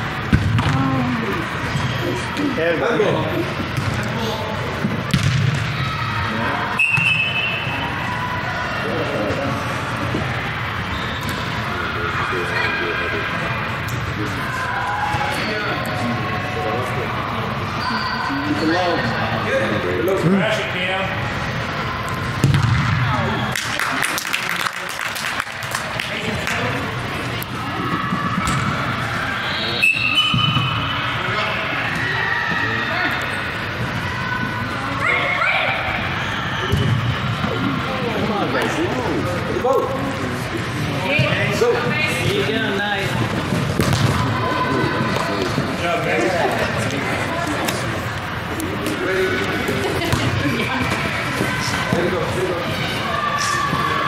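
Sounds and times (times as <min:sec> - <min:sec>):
ball being kicked: 0:00.3 - 0:00.8, 0:05.1 - 0:05.6, 0:22.4 - 0:23.0, 0:43.7 - 0:44.2.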